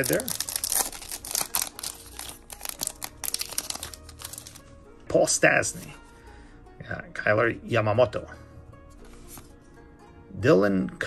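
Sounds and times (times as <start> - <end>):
foil wrapper crinkling: 0.0 - 4.6.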